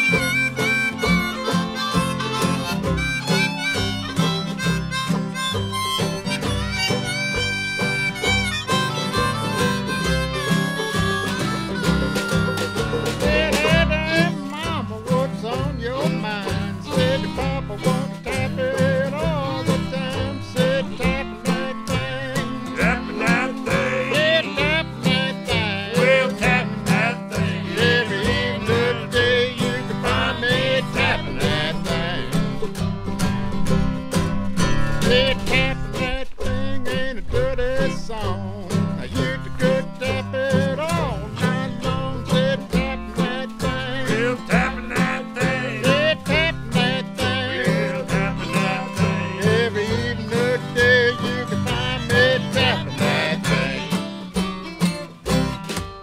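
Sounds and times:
harmonica melody: 0:00.0 - 0:36.5, 0:39.0 - 0:56.0
strummed guitar: 0:00.0 - 0:56.0
washtub bass: 0:00.0 - 0:56.0.

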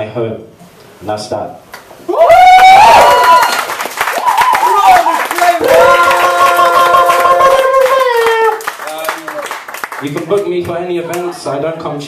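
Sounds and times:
audience clapping and cheering: 0:02.2 - 0:11.4.

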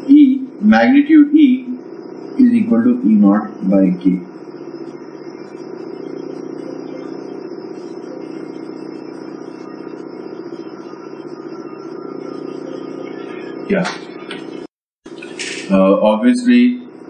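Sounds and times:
low mechanical drone: 0:00.0 - 0:17.0
thin high whine: 0:00.0 - 0:17.0.

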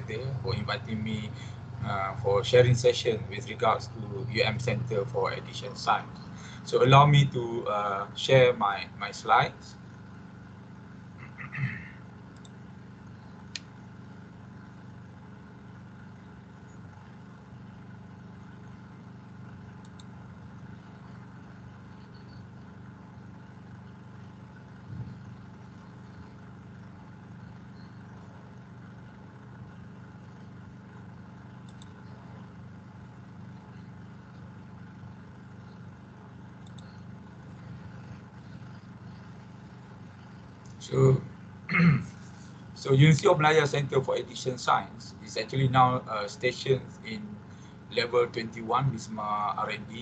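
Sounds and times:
low hum with hiss: 0:00.0 - 0:50.0.

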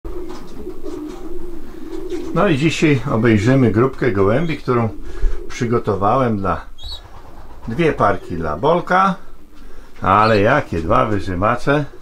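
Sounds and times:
pigeons cooing: 0:00.1 - 0:12.0.

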